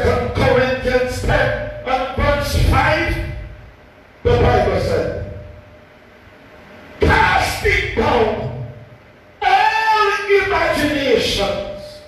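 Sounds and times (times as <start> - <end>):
faint steady hum: 0.0 - 12.0
man shouting: 7.0 - 8.6, 9.4 - 11.0.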